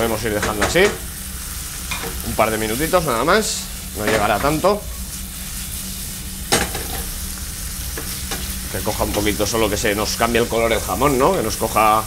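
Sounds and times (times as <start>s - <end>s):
food sizzling in oil in frying pan: 0.0s - 12.0s.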